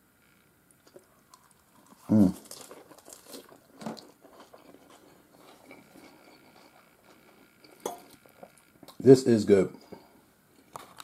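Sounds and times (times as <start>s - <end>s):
faint chewing of salad: 0.6s - 9.0s.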